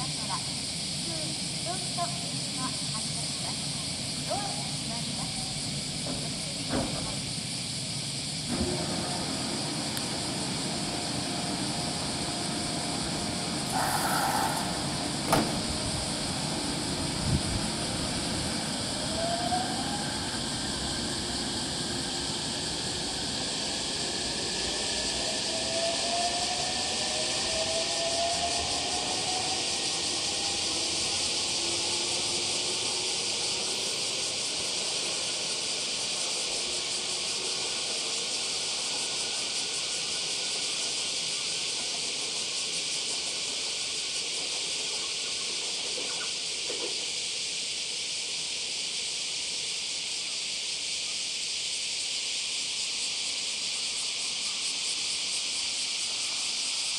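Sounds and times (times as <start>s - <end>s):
steady high hiss: 0.0s - 8.5s, 9.6s - 28.1s, 28.8s - 56.9s
electric train motor whine: 3.9s - 44.0s.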